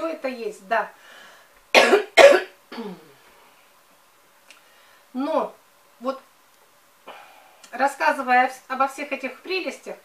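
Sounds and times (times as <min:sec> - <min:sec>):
woman coughing: 0:01.8 - 0:03.0
woman making throat sound: 0:02.7 - 0:03.2.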